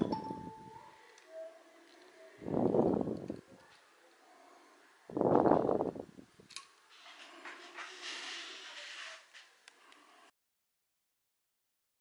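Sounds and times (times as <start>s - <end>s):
soft rustle: 6.9s - 10.1s.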